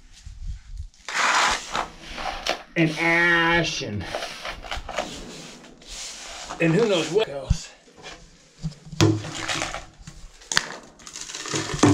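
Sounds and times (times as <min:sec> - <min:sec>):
brush sweeping dirt into dustpan: 0:01.0 - 0:03.4, 0:04.0 - 0:07.5.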